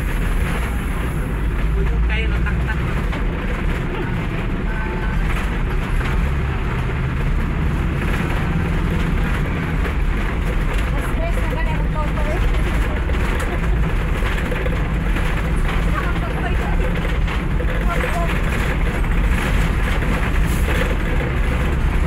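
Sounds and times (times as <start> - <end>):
faint passenger voices: 0.0 - 7.4, 8.1 - 21.4
vehicle road and engine rumble: 0.0 - 22.0.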